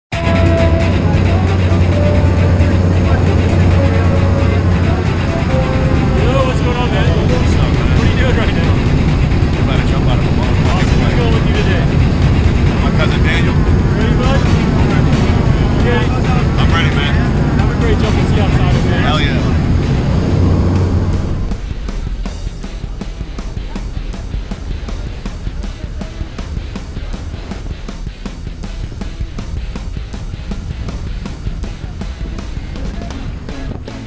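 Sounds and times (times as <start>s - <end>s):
background music: 0.0s - 34.0s
propeller plane engine drone: 0.1s - 33.8s
indistinct voices: 0.1s - 34.0s.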